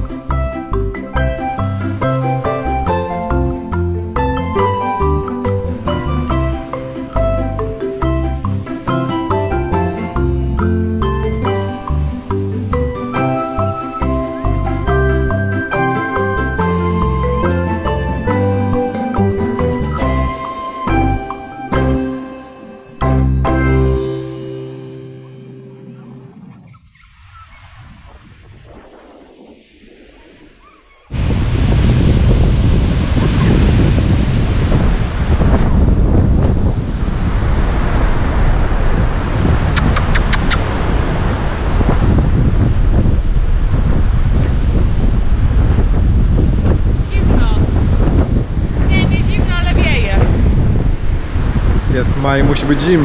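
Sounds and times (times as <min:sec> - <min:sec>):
music: 0:00.0 - 0:26.5
surf: 0:00.0 - 0:53.0
wind buffeting microphone: 0:25.5 - 0:53.0.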